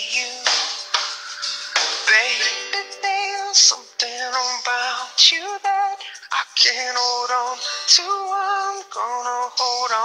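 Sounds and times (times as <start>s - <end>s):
pop song with vocals: 0.0s - 10.0s.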